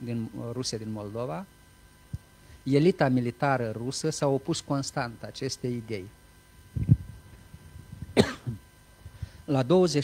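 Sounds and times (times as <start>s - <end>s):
man coughing: 8.1s - 8.6s.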